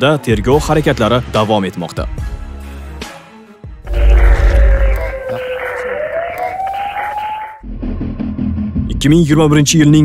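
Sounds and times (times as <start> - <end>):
low background music: 0.0 - 10.0
whooshing transition with rising tone: 3.9 - 6.5.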